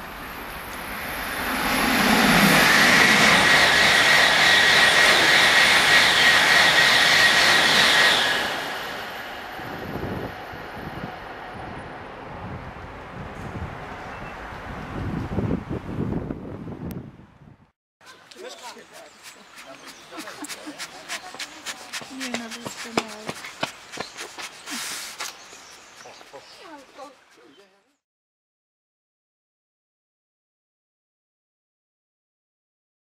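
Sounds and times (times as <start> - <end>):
high-speed train passing: 0.0 - 16.9
gusty wind noise: 0.8 - 17.7.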